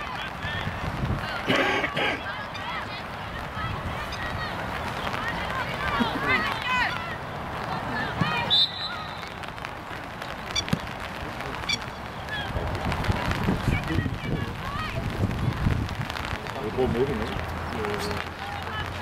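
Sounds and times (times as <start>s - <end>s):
wind rumbling on microphone: 0.0s - 1.6s, 2.4s - 7.9s, 9.7s - 19.0s
distant shouts and calls: 0.0s - 16.3s.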